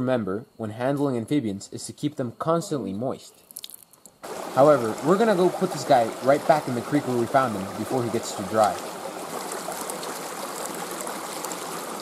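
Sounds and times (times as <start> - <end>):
creek water flowing: 3.6 - 12.0.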